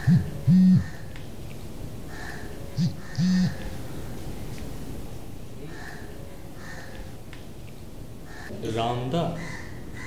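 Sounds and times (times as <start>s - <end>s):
phone vibrating low buzz: 0.0s - 1.0s, 2.8s - 3.6s.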